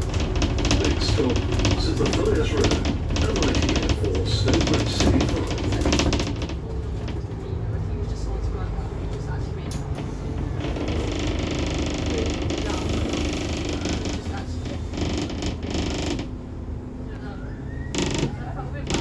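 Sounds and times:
bus engine rumble: 0.0 - 19.0.

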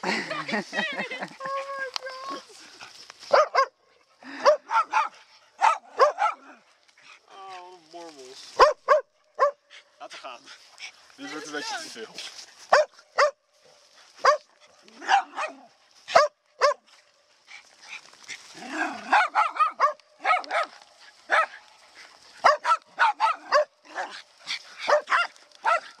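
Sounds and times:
dogs barking sharply: 3.3 - 3.8, 4.4 - 6.5, 8.6 - 9.6, 12.7 - 13.4, 14.2 - 16.9, 19.0 - 21.6, 22.4 - 24.2, 24.8 - 26.0.

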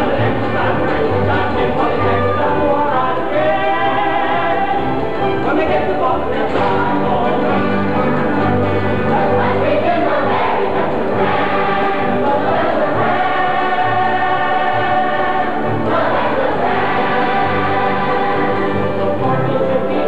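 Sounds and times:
chorus singing: 0.0 - 20.0
musical accompaniment: 0.0 - 20.0.

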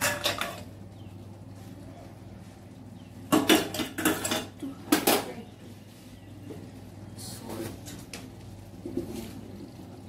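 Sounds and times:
metal cookware clattering: 0.0 - 0.7, 3.3 - 5.4.

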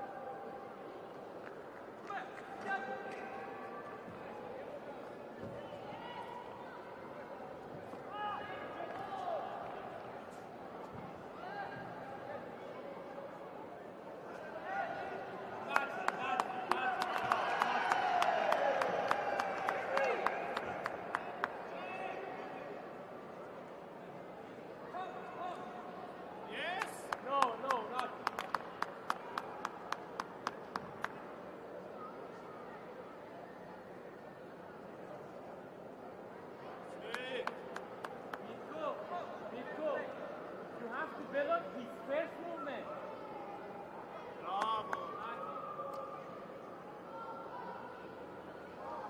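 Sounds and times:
sharp hand claps: 26.8 - 31.2.

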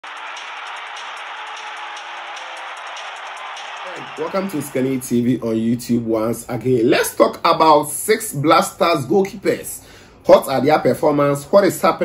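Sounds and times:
music: 0.0 - 5.3
stadium crowd noise: 0.0 - 6.5.

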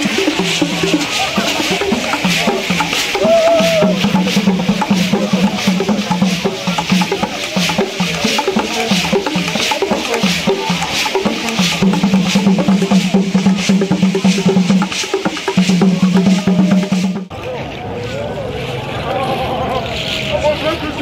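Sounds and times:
struck wooden percussion: 0.0 - 17.4
drums: 0.0 - 21.0.

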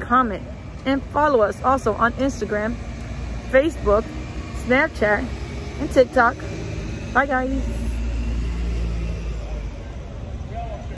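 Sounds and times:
motor vehicle rumble: 0.0 - 10.9.

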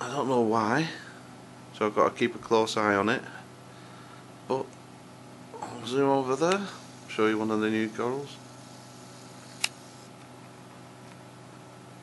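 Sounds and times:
low hum and hiss: 0.0 - 12.0
sharp click: 9.4 - 10.3.

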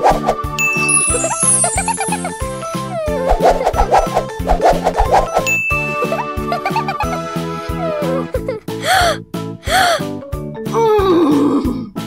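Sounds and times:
upbeat cartoon music: 0.0 - 12.0
twinkling chime descending: 0.6 - 3.0, 5.5 - 7.4.

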